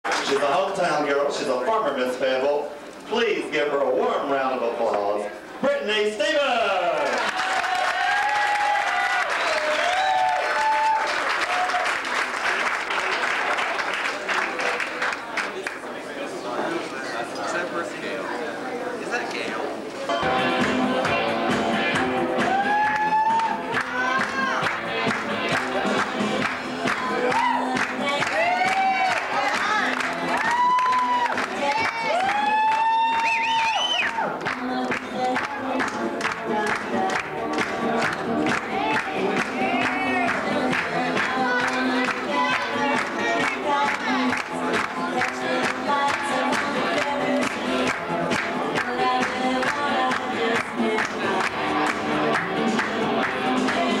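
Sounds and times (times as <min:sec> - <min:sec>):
audience cheering: 0:06.8 - 0:13.9, 0:22.4 - 0:24.6, 0:27.2 - 0:34.4
rising and falling whoops: 0:07.4 - 0:11.9, 0:22.4 - 0:23.6, 0:28.3 - 0:29.2, 0:30.3 - 0:34.3
music with steady beat: 0:20.1 - 0:28.9, 0:34.2 - 0:54.0.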